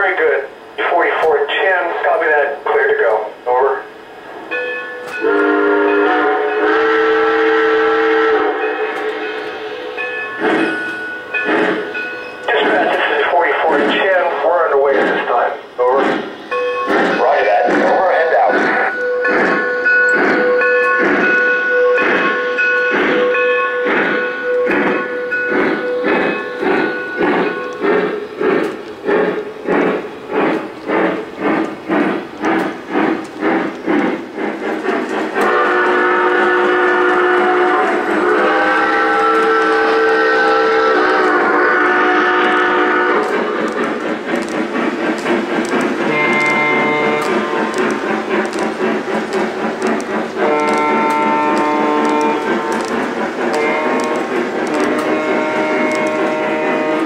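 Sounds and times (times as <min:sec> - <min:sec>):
steam locomotive chuffing: 0:00.0 - 0:57.0
train whistle chord: 0:05.1 - 0:09.9, 0:35.4 - 0:43.3, 0:50.4 - 0:52.8, 0:53.6 - 0:57.0.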